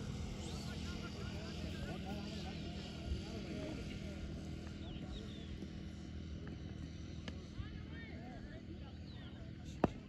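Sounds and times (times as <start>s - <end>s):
distant people talking: 0.0s - 10.0s.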